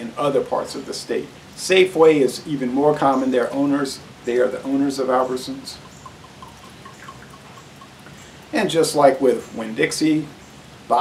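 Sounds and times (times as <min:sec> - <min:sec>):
liquid trickling into glass: 0:04.3 - 0:08.6.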